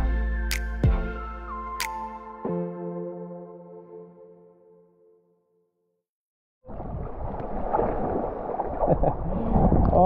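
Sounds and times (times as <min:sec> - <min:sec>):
water sloshing and gurgling: 0:06.6 - 0:10.0
wind buffeting microphone: 0:06.7 - 0:10.0.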